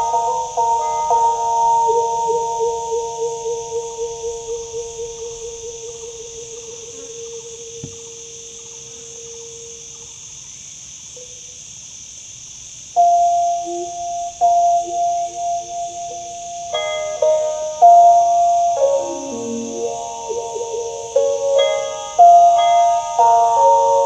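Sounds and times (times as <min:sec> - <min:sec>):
stick zither music: 0:13.3 - 0:24.0.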